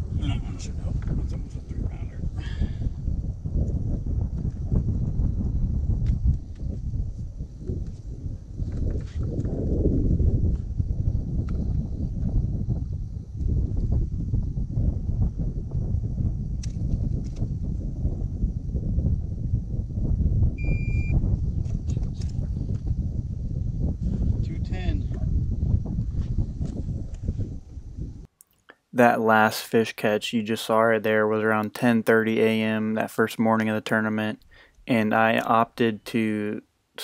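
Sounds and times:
wind buffeting microphone: 0.0 - 28.3
short high electronic beep: 20.6 - 21.2.

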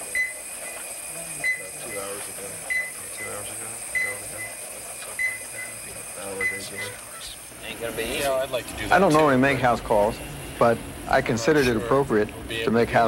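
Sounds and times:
patient monitor beeping: 0.0 - 7.2
low murmured voices: 0.0 - 13.0.

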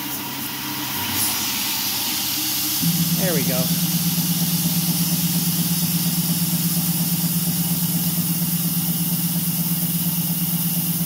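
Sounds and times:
mill spindle humming: 0.0 - 11.0
mist coolant hissing: 0.0 - 11.0.

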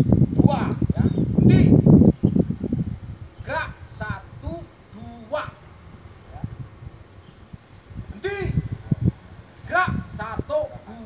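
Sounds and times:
wind buffeting microphone: 0.0 - 11.0
person shouting: 8.2 - 8.6, 9.7 - 11.0.

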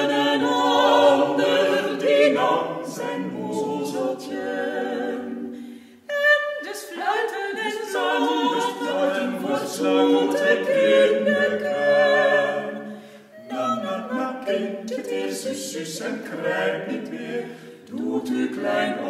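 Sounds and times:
a cappella group singing a carol: 0.0 - 19.0.

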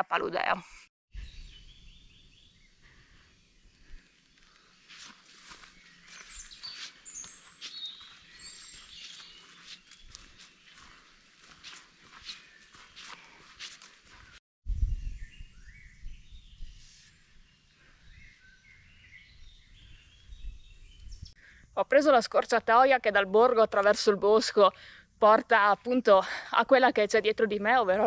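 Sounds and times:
birds chirping: 0.1 - 14.4, 17.3 - 21.8
footsteps rustling on path: 3.8 - 14.4.

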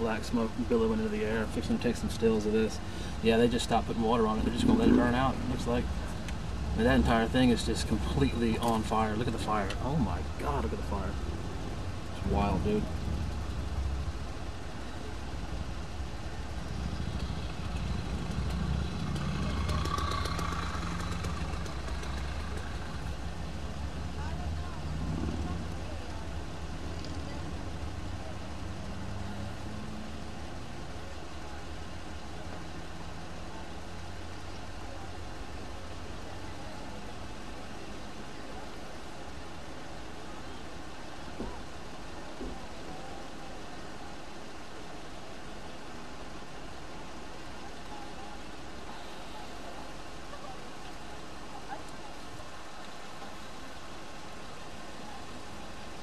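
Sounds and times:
vehicle engines idling: 0.0 - 56.0.

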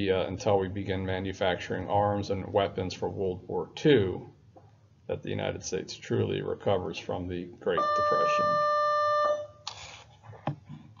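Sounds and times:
steady electronic beep: 7.7 - 9.5
brief hiss: 9.6 - 10.2.

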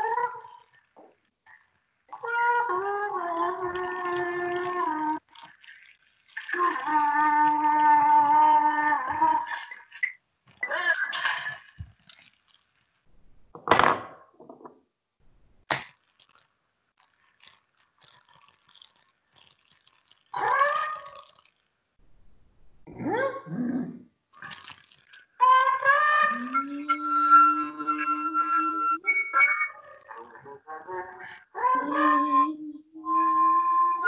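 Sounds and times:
flute playing: 26.2 - 30.0.

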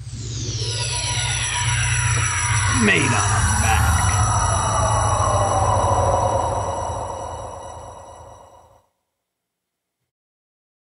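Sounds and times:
sustained high tones: 0.0 - 8.9.

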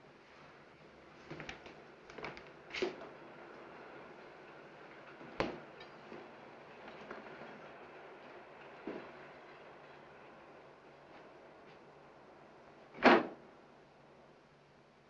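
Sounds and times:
film soundtrack hiss: 0.0 - 15.0.

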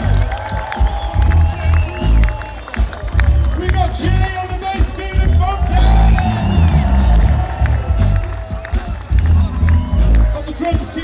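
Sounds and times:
crowd voices: 0.0 - 11.0
live pop band: 0.0 - 11.0.

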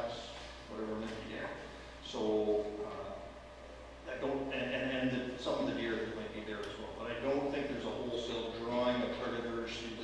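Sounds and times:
man speaking: 0.0 - 3.4, 4.0 - 10.0.

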